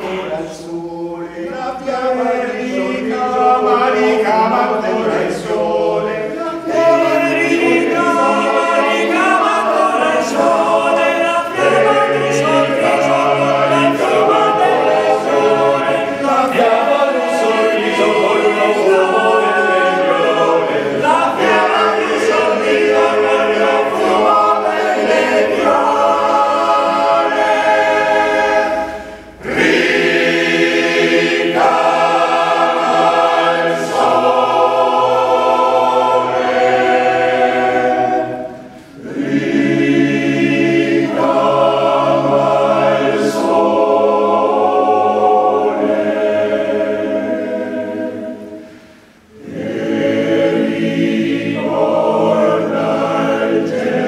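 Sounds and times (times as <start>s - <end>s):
male choir singing a cappella: 0.0s - 54.0s.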